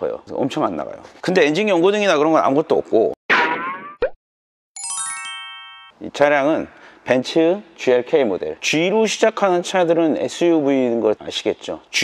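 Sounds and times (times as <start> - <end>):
bright bell-like jingle: 4.8 - 6.0.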